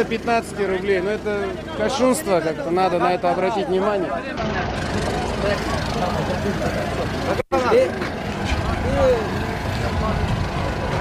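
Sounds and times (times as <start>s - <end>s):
steady low rumble: 8.1s - 11.0s.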